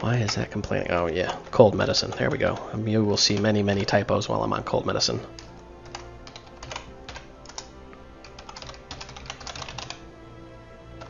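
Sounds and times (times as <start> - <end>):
keyboard typing: 0.0 - 4.1, 5.3 - 10.0.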